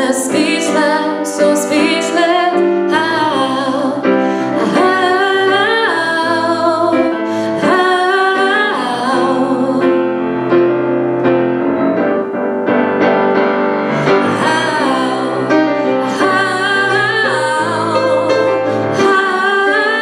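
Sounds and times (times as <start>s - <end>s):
woman singing into microphone: 0.0s - 10.0s, 14.2s - 20.0s
keyboard accompaniment: 0.0s - 20.0s.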